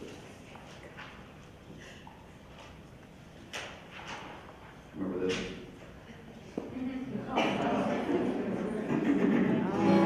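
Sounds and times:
murmur of voices: 0:04.7 - 0:10.0.

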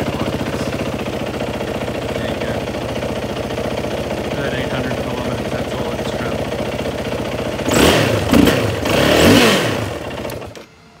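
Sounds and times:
motorcycle engine idling and revving: 0:00.0 - 0:11.0.

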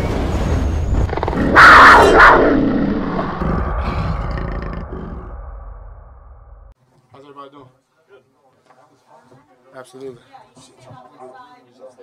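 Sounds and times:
low rumble: 0:00.0 - 0:06.8
big cat roaring: 0:01.0 - 0:06.0.

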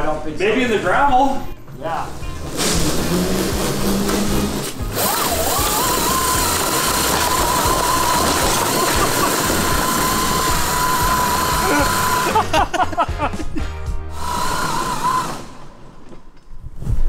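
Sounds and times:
background music with low beat: 0:01.4 - 0:15.0
electric go-kart motor whining: 0:02.2 - 0:12.5, 0:14.2 - 0:15.9.

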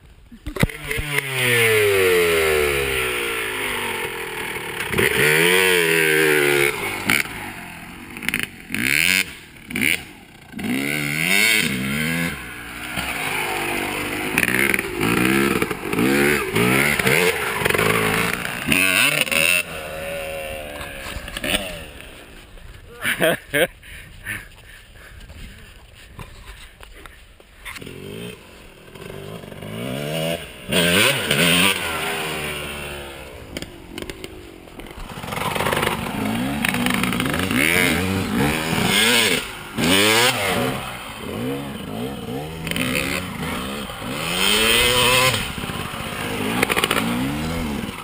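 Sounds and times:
dirt bike engine revving: 0:00.4 - 0:23.5, 0:27.6 - 0:48.0.

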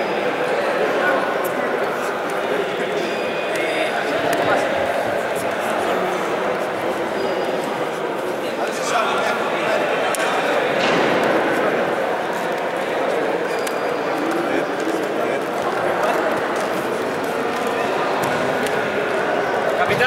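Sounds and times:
chatter of many voices: 0:00.0 - 0:20.0.

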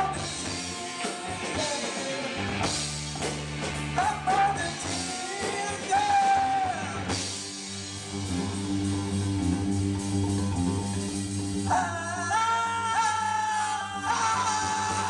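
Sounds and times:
live rock band playing: 0:00.0 - 0:15.0
held vocal line: 0:11.7 - 0:15.0.

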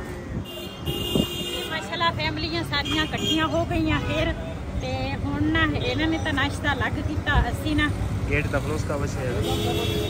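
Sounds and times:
street noise: 0:00.0 - 0:10.0
vehicle horn: 0:00.5 - 0:01.9, 0:09.4 - 0:10.0.

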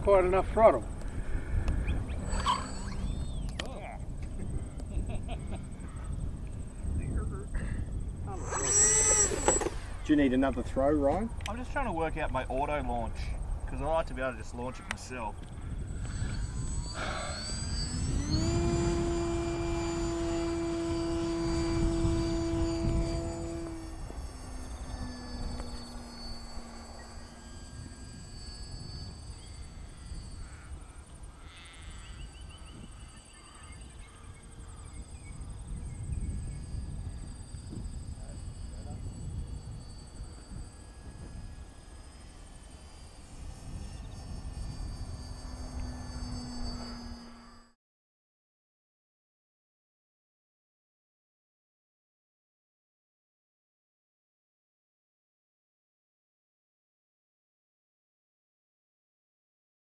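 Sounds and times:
model plane motor whine: 0:00.0 - 0:47.8.

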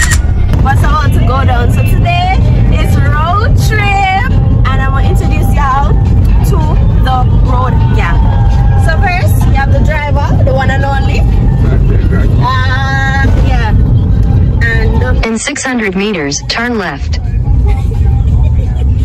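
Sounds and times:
car cabin road rumble: 0:00.0 - 0:19.0.

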